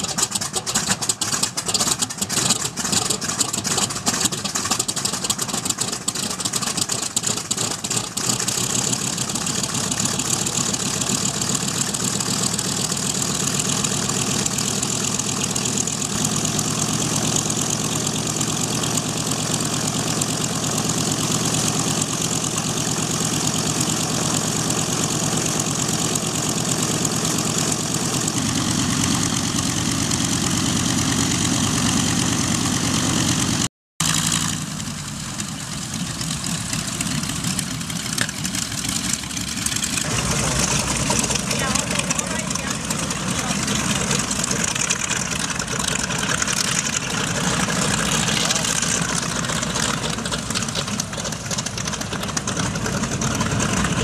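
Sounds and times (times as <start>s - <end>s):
aircraft radial engines idling: 0.0s - 54.0s.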